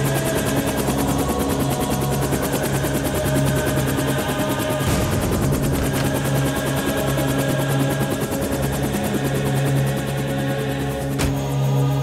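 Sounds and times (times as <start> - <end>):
dramatic film score: 0.0 - 12.0
helicopter rotor and turbine running: 0.0 - 12.0.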